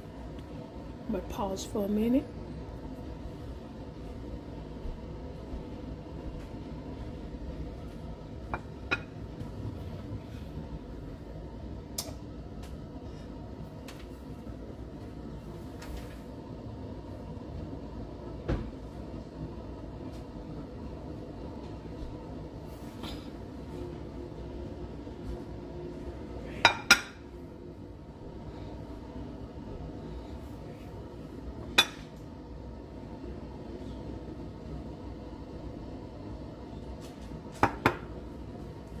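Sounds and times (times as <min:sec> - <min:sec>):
low room rumble: 0:00.0 - 0:39.0
plate knocking on stone countertop: 0:08.5 - 0:09.1.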